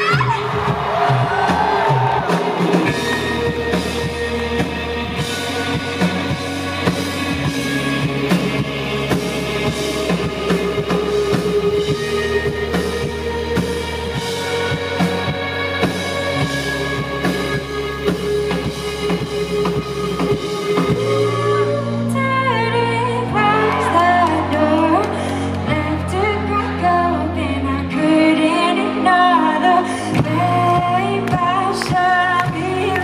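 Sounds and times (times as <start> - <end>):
drum kit beat: 0.0 - 21.6
live band playing: 0.0 - 33.0.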